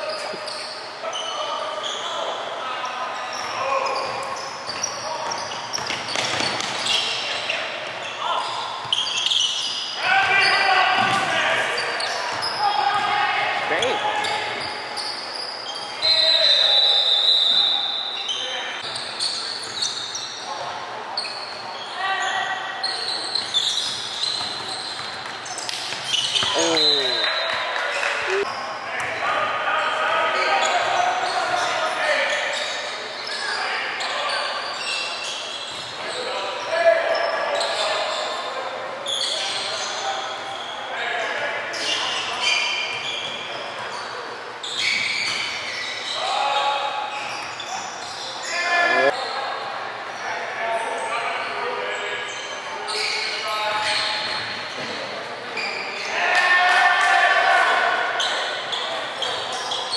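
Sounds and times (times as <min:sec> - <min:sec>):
sneakers squeaking: 0:00.0 - 0:29.2, 0:29.9 - 0:50.2, 0:50.8 - 0:56.2, 0:58.0 - 0:59.9
people calling out: 0:26.4 - 0:27.4, 0:28.2 - 0:28.5.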